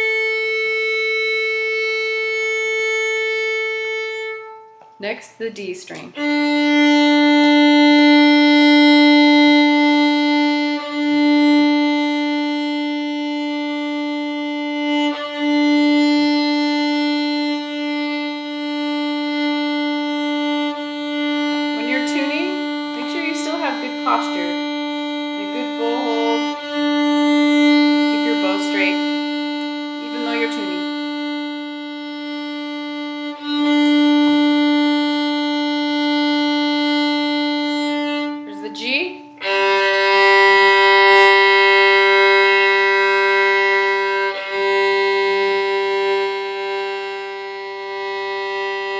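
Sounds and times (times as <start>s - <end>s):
violin string bowed: 0.0s - 48.9s.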